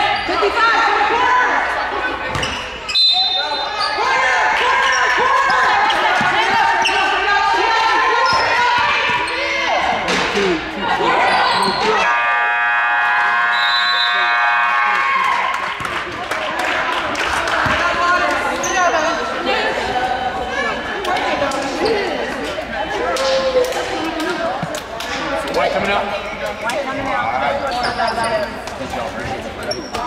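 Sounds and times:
players' voices: 0:00.0 - 0:30.0
sneaker squeaks: 0:02.3 - 0:05.2, 0:05.8 - 0:07.2, 0:08.2 - 0:09.6, 0:11.3 - 0:12.0, 0:18.6 - 0:19.2, 0:26.2 - 0:30.0.

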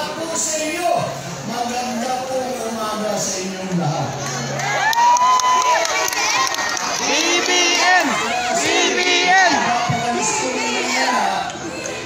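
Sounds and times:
crowd cheering and shouting: 0:03.8 - 0:12.0.

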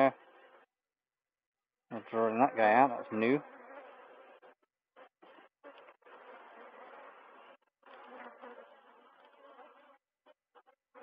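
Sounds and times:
honeybees humming: 0:02.1 - 0:11.0.

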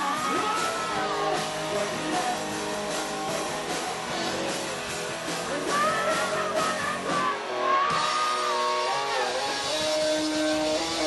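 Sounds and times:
distorted electric guitar: 0:00.0 - 0:11.0
live rock band playing: 0:00.0 - 0:11.0
pub crowd noise: 0:00.0 - 0:11.0.

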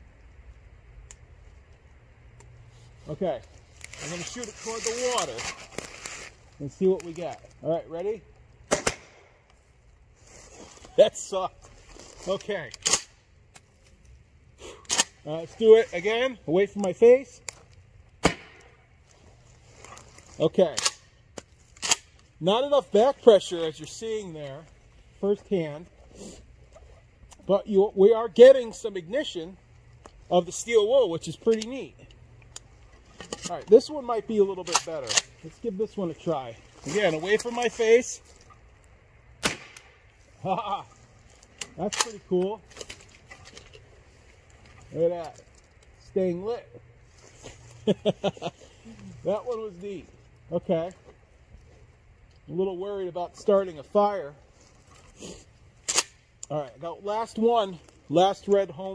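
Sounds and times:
short rustle: 0:02.6 - 0:07.6, 0:09.6 - 0:12.9, 0:47.0 - 0:50.3
shotgun shot: 0:08.7 - 0:09.3, 0:18.2 - 0:18.7, 0:39.4 - 0:39.9.

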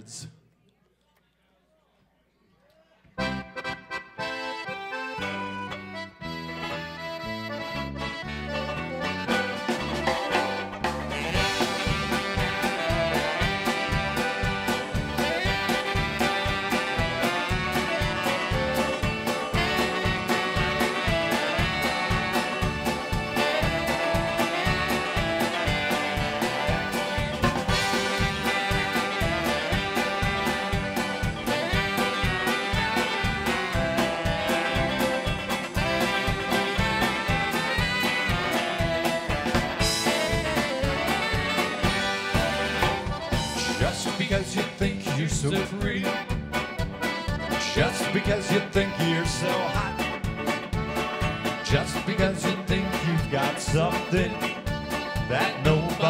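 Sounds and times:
polka band playing: 0:03.2 - 0:56.0.

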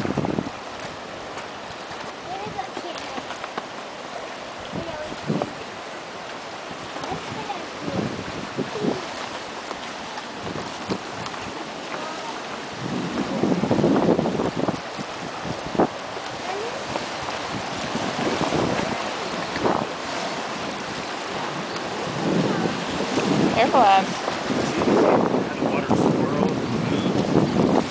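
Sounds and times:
surf sloshing into rock pool: 0:00.0 - 0:27.9
wind buffeting microphone: 0:00.0 - 0:27.9.

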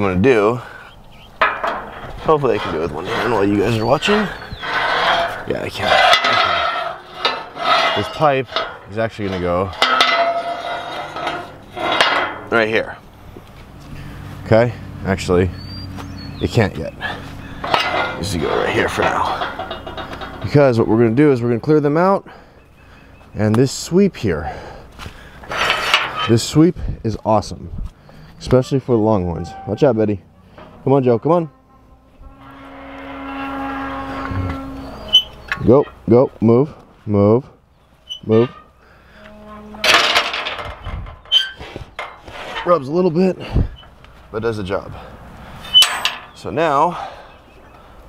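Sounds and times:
metal gate squealing: 0:01.4 - 0:12.7, 0:15.3 - 0:22.2, 0:25.5 - 0:26.6, 0:28.4 - 0:36.2, 0:38.0 - 0:42.9, 0:45.6 - 0:46.8
steel pipe clanging on metal rails: 0:01.4 - 0:12.8, 0:17.6 - 0:22.2, 0:25.5 - 0:26.6, 0:32.2 - 0:36.1, 0:39.4 - 0:42.9, 0:45.7 - 0:46.7.

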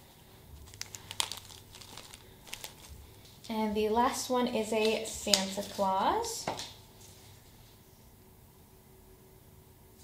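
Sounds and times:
packaging crinkling: 0:00.5 - 0:03.4.

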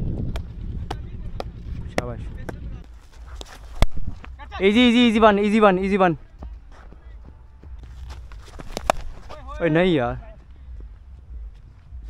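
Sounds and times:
low wind rumble: 0:00.0 - 0:12.0
running footsteps: 0:00.0 - 0:12.0.

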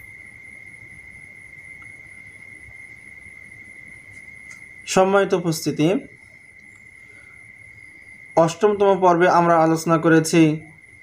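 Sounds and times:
background hiss: 0:00.0 - 0:11.0
high-pitched whine: 0:00.0 - 0:11.0.

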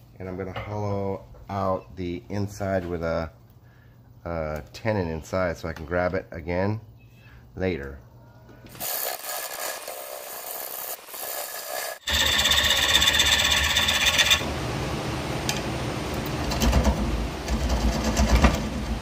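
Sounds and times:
wood lathe gouge cutting: 0:08.8 - 0:14.5.

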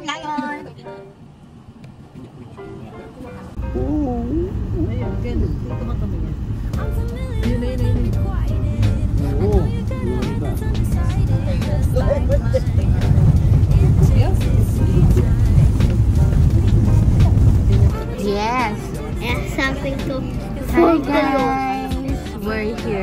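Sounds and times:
car engine and road rumble: 0:00.0 - 0:23.0
pop song with singing: 0:06.6 - 0:23.0.

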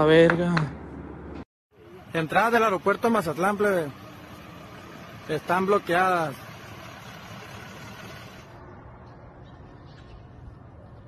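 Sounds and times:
roadside background noise: 0:00.0 - 0:11.0.

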